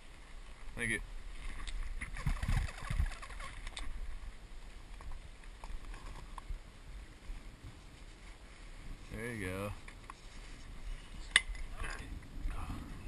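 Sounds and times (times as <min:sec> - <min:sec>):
faint creaks and ticks: 0:01.3 - 0:06.6, 0:09.8 - 0:12.6
wooden spindle rubbing and squeaking: 0:02.0 - 0:04.0.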